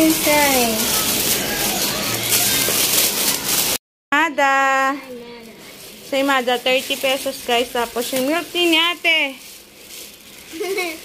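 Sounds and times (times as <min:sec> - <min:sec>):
plastic bag rustling: 0:00.0 - 0:03.8, 0:04.5 - 0:11.0.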